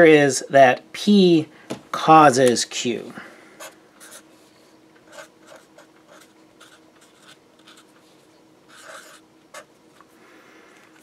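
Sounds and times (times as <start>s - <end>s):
marker writing on paper: 3.6s - 4.2s, 5.1s - 8.1s, 8.7s - 9.7s.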